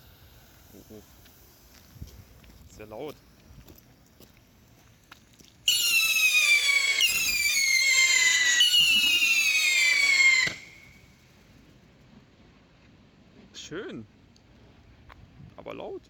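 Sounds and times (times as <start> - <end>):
screaming whistle rockets: 5.7 - 11.2.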